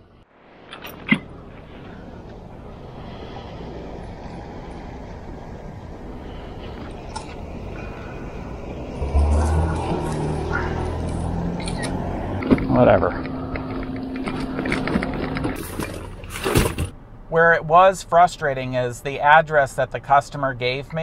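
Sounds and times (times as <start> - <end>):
road traffic passing: 0.0 - 21.0
vehicle engine rumble passing close: 0.1 - 20.6.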